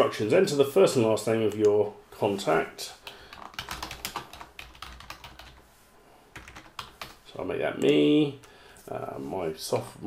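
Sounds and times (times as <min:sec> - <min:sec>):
typing on computer keyboard: 0:03.3 - 0:05.6, 0:06.4 - 0:07.2.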